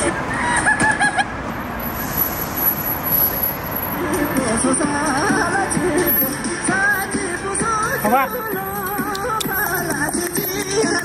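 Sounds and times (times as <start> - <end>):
city street traffic: 0.0 - 11.0
thin high steady tone: 1.8 - 4.0, 5.9 - 6.6.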